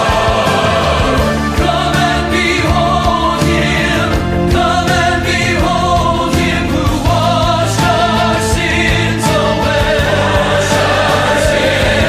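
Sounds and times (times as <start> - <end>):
choir singing gospel anthem: 0.0 - 12.0
drums keeping a steady beat: 0.0 - 12.0
orchestral accompaniment: 0.0 - 12.0.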